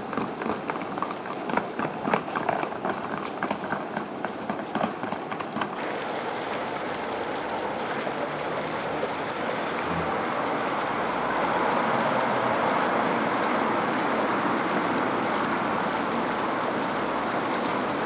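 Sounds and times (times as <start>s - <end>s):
road traffic passing: 5.8s - 18.0s.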